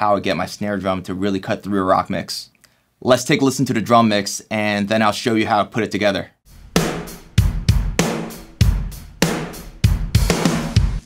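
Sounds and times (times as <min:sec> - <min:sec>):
hi-hat and cymbals: 0:06.5 - 0:11.0
kick drum thumps: 0:06.8 - 0:11.0
snare drum hits: 0:06.8 - 0:11.0.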